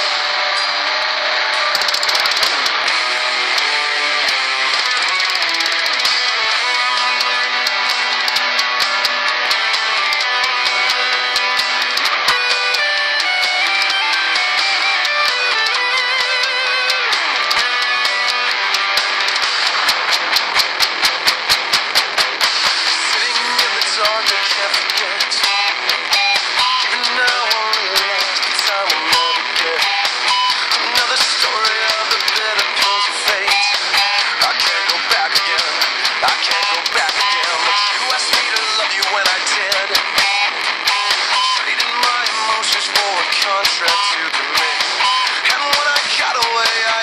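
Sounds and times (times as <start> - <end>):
driving drum beat: 0.0 - 47.0
electric guitar metal music: 0.0 - 47.0
rapid sharp hits: 0.0 - 47.0.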